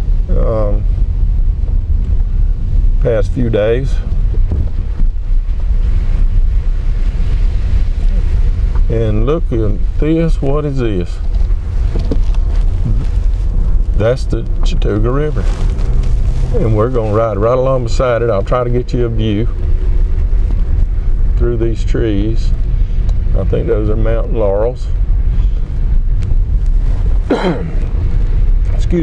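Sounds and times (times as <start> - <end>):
car engine rumble: 0.0 - 29.0
road noise: 0.0 - 29.0.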